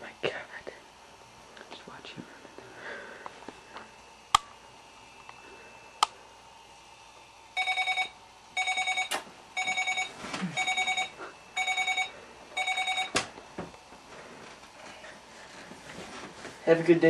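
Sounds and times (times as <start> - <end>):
alarm clock beeping: 7.6 - 13.2.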